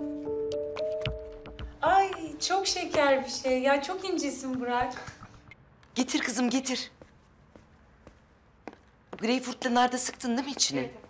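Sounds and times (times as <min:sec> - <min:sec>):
footsteps on wooden floor: 0:00.6 - 0:05.1, 0:06.9 - 0:11.0.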